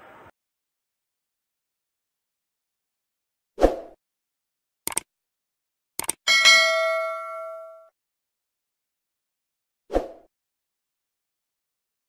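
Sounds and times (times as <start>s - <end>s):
quick clicks: 4.9s - 5.1s, 6.0s - 6.2s
notification bell ding: 6.3s - 7.9s.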